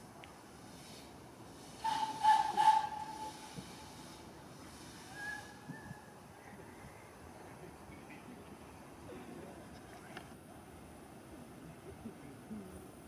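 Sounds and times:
steam locomotive whistle: 0:01.7 - 0:04.2, 0:04.9 - 0:05.7.

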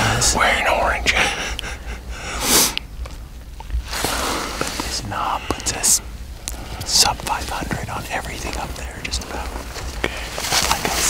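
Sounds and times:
man whispering: 0:00.0 - 0:01.6, 0:04.8 - 0:11.0.

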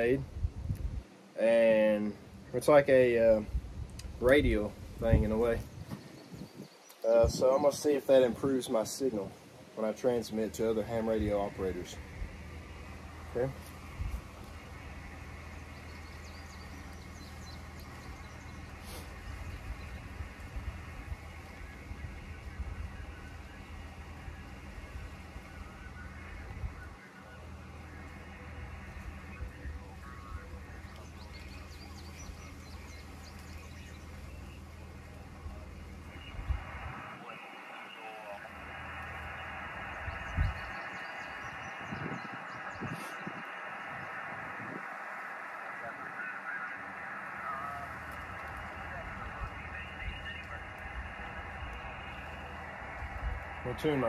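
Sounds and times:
wind rumble on microphone: 0:00.0 - 0:01.1, 0:03.2 - 0:08.6, 0:11.2 - 0:34.2, 0:35.3 - 0:37.3, 0:38.7 - 0:46.7
radio receiver hiss: 0:00.0 - 0:54.0
faint garbled voices: 0:05.9 - 0:54.0.

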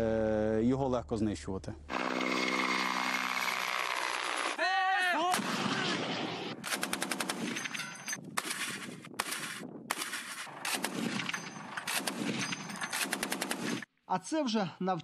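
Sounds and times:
helicopter flying: 0:01.9 - 0:04.6
person shouting: 0:04.6 - 0:05.8
automatic gunfire bursts: 0:06.6 - 0:13.8.

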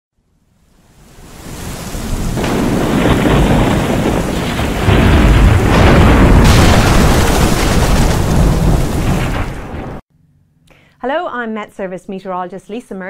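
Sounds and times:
heavy rain: 0:00.6 - 0:10.0
thunder rumbling: 0:01.0 - 0:10.0.

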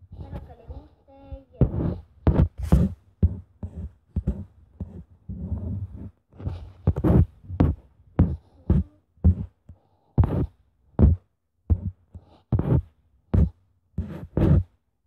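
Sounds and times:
loud thumps on microphone: 0:01.6 - 0:04.4.

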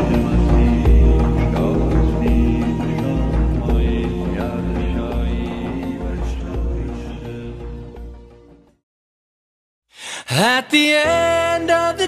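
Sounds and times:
chanted vocal line: 0:00.0 - 0:08.1.

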